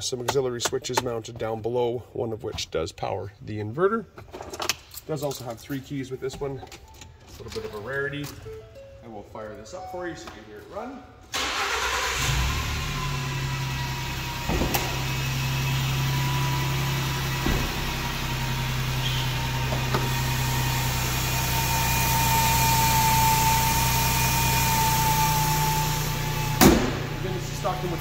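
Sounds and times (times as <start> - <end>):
engine idling: 11.4 - 28.0
hood shutting thump: 17.3 - 18.1, 26.4 - 27.2.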